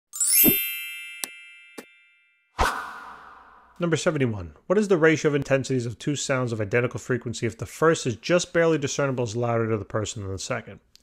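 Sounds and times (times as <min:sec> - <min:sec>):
bright ringing chime: 0:00.1 - 0:02.6.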